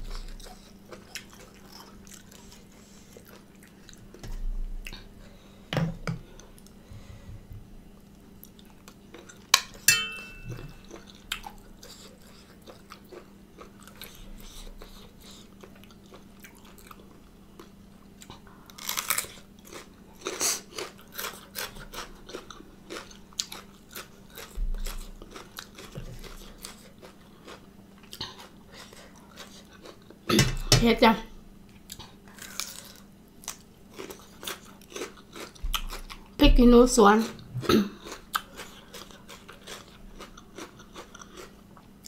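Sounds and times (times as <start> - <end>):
crunchy bites and chewing: 18.2 - 30.1, 31.9 - 36.3, 37.6 - 41.9.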